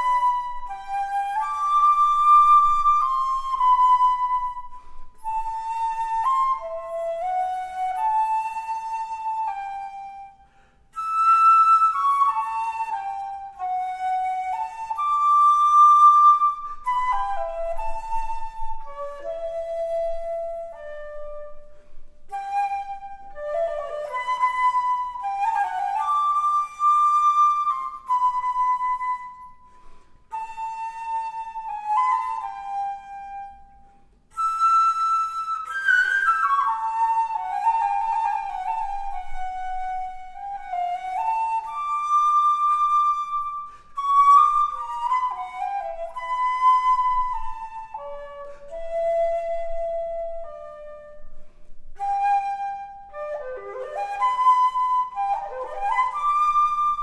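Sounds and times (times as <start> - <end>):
solo wooden flute melody: 0.0 - 57.0.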